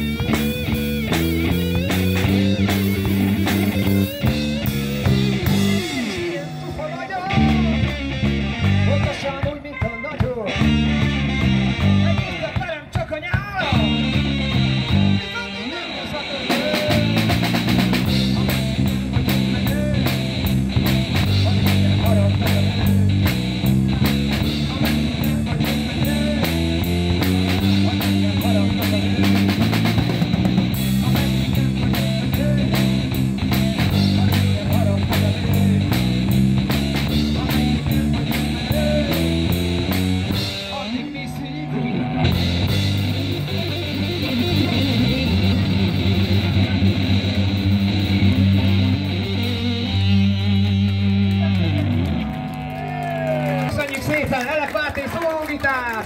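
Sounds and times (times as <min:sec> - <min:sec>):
drum kit with cymbals: 0:00.0 - 0:41.5, 0:42.2 - 0:50.3
bass line: 0:00.0 - 0:54.6
electric guitar: 0:00.0 - 0:54.9.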